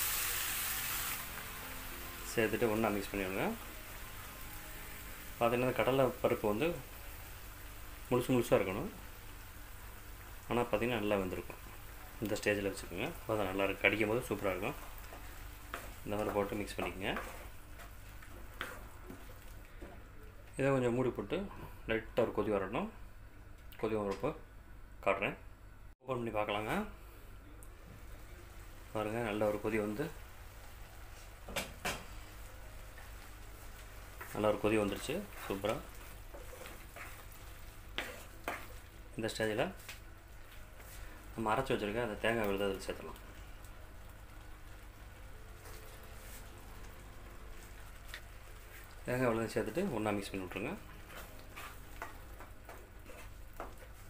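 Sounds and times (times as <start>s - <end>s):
spatula stirring in a pan: 13.6s - 20.0s, 32.8s - 39.1s, 39.8s - 54.0s.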